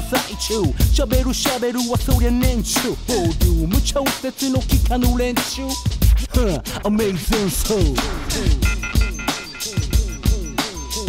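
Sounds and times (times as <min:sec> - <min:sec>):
rapping over a beat: 0:00.0 - 0:11.0
deep bass line: 0:02.0 - 0:11.0.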